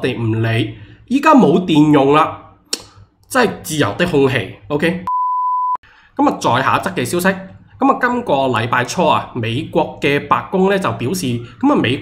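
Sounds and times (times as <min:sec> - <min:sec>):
man speaking: 0:00.0 - 0:02.5, 0:03.3 - 0:05.1, 0:06.2 - 0:12.0
pure-tone test bleep: 0:01.5 - 0:02.0, 0:05.1 - 0:05.8.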